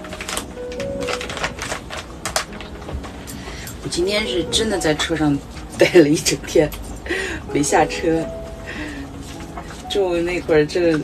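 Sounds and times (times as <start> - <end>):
plastic packaging crinkling: 0.0 - 3.9.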